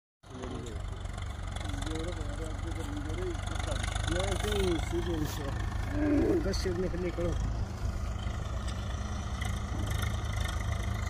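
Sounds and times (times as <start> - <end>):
tractor diesel engine running: 0.2 - 11.0.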